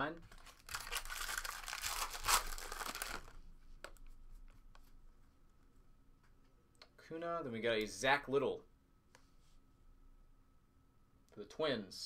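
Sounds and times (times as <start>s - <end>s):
foil pack crinkling: 0.3s - 3.4s.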